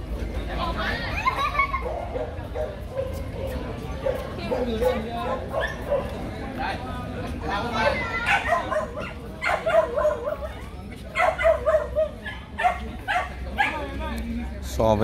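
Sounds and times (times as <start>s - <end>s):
dog barking: 1.8s - 6.2s, 7.8s - 10.5s, 11.2s - 13.9s.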